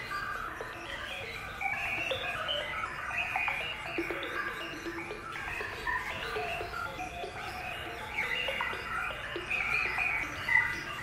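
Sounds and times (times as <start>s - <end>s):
faint background music: 0.0s - 11.0s
small birds chirping: 0.0s - 11.0s.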